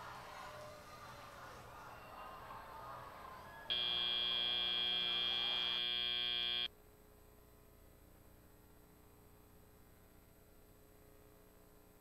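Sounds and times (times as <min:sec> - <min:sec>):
loud high-pitched buzzer: 0:03.7 - 0:06.7.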